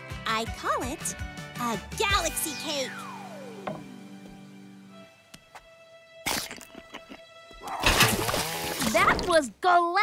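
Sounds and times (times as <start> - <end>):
soft cartoon background music: 0.0 - 10.0.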